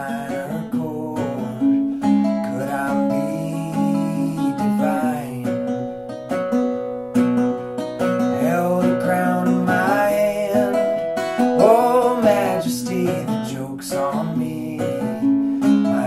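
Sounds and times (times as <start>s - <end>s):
man singing: 0.0s - 6.2s, 8.2s - 16.0s
acoustic guitar picking: 0.0s - 16.0s.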